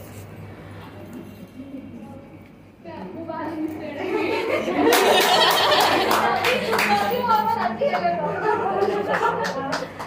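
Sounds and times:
people talking and laughing: 0:03.5 - 0:10.0
hand claps: 0:04.8 - 0:07.3, 0:08.8 - 0:10.0.

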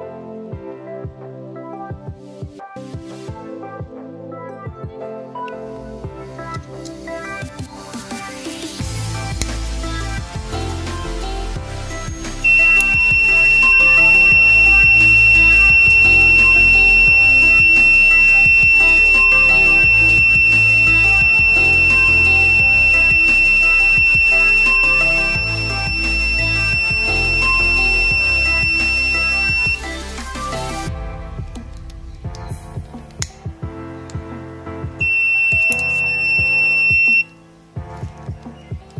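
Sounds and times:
background music: 0:00.0 - 0:38.9
high-pitched alarm buzzer: 0:12.4 - 0:30.7.

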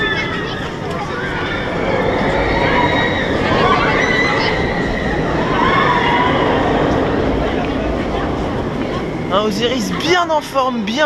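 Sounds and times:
roller coaster rumbling: 0:00.0 - 0:11.0
voices: 0:00.0 - 0:11.0.

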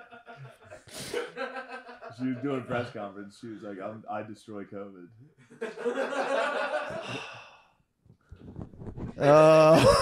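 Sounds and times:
man exhaling breathily: 0:06.9 - 0:07.7.

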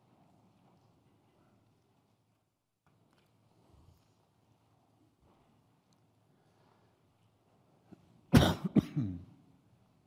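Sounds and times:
man coughing: 0:08.3 - 0:09.4.

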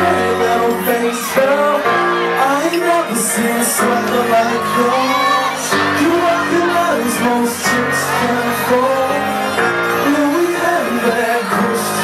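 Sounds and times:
man singing into microphone: 0:00.0 - 0:12.0
pop backing track: 0:00.0 - 0:12.0.

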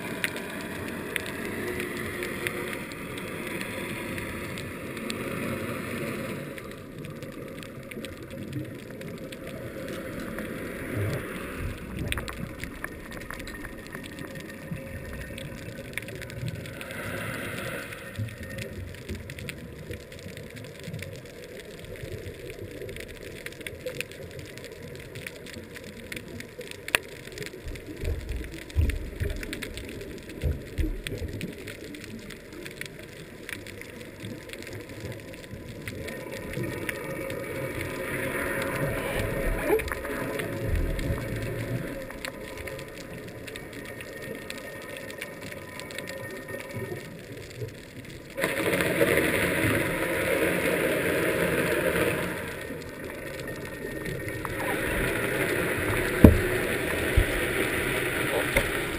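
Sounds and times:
muffled underwater hiss: 0:00.0 - 0:58.9.

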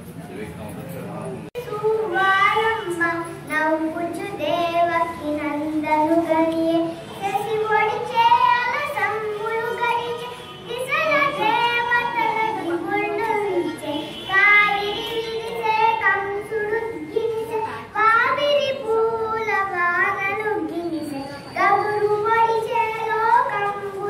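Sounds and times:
girl singing: 0:01.6 - 0:24.0.

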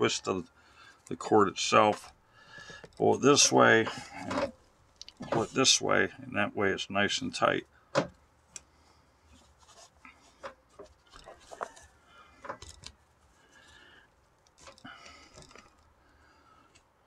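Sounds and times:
cord rustling through drum lacing: 0:09.3 - 0:15.9.

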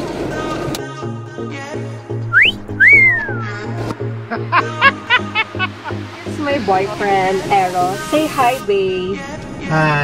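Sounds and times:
background music with bass beat: 0:00.9 - 0:08.6
wolf whistle: 0:02.3 - 0:03.6.

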